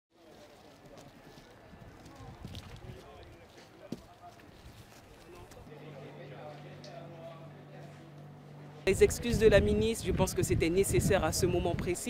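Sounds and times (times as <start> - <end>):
low steady rumble: 7.3 - 12.0.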